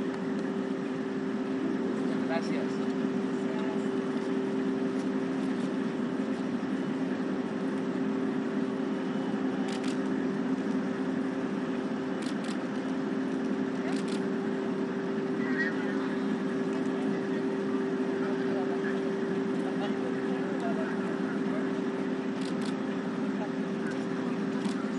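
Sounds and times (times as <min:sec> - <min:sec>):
steady low two-tone hum: 0:00.0 - 0:24.9.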